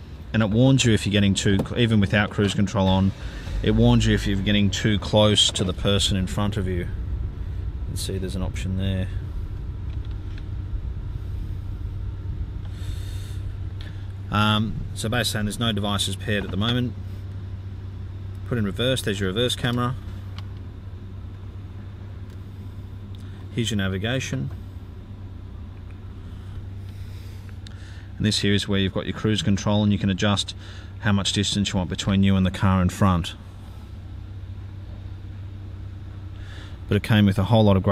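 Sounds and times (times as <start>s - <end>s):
car engine idling: 0.0s - 37.9s.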